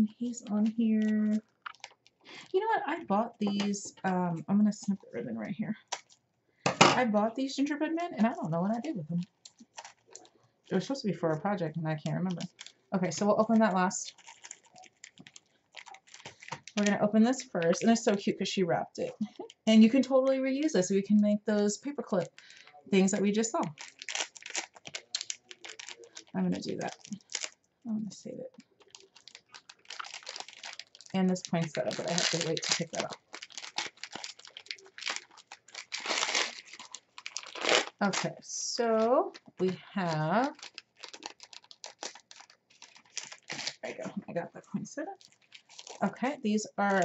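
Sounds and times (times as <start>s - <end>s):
foil and cellophane crinkling: 0.2s - 2.5s, 5.8s - 6.2s, 8.1s - 11.4s, 12.0s - 18.2s, 22.2s - 27.6s, 28.5s - 44.0s, 45.1s - 47.0s.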